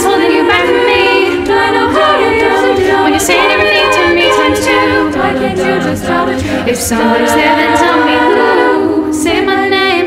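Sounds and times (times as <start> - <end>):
a cappella group singing harmonies: 0.0 - 10.0.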